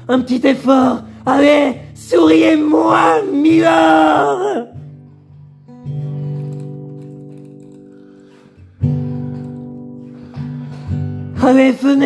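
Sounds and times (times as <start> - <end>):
guitar strumming chords: 0.0 - 12.0.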